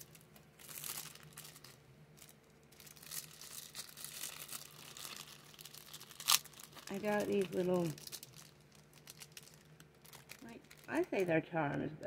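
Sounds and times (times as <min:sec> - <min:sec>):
packaging rustling and crinkling: 0:00.0 - 0:11.4.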